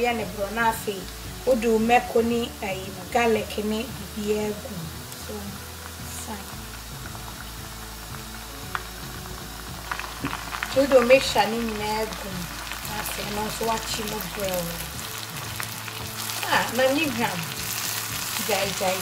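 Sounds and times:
onions sizzling in hot oil: 0.0 - 19.0.

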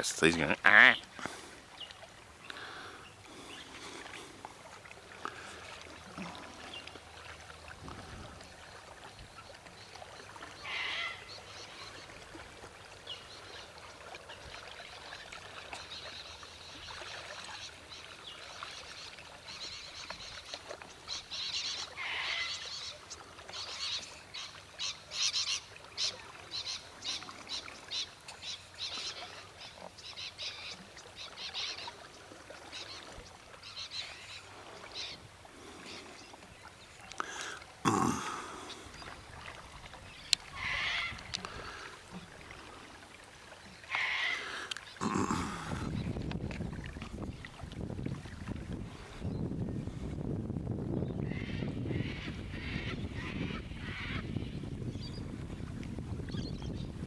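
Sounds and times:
wild birds calling: 0.0 - 46.2, 51.0 - 55.2
faint wind: 0.0 - 57.0.

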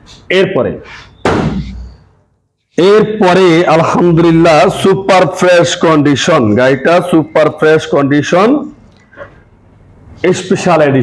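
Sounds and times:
man speaking loudly: 0.3 - 0.8, 2.8 - 8.7, 10.2 - 11.0.

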